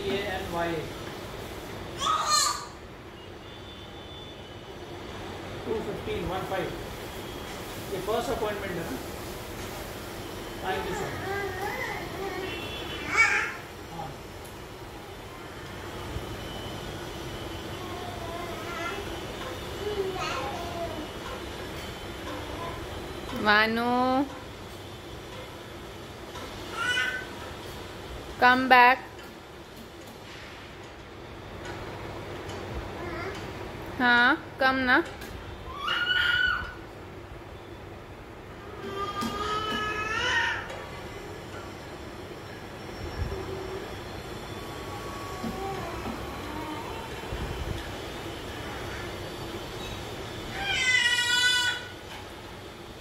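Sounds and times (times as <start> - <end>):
baby squealing: 2.0 - 2.8, 35.7 - 36.8
baby whining: 38.7 - 40.7.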